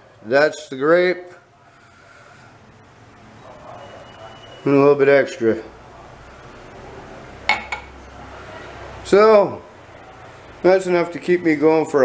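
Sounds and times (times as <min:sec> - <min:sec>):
glass clinking on counter: 0:07.5 - 0:07.9.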